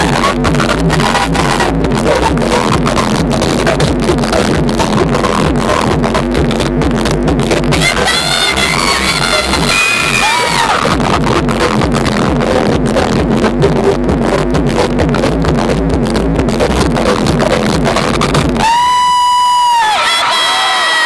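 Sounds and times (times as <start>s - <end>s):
live pop music with beat: 0.0s - 20.5s
high voice holding long note: 7.7s - 10.8s
crowd cheering: 7.8s - 11.0s, 18.6s - 21.0s.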